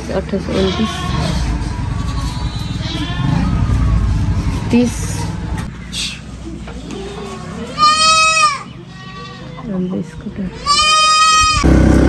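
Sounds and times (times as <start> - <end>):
goat bleating: 0.3 - 3.7, 6.8 - 11.7.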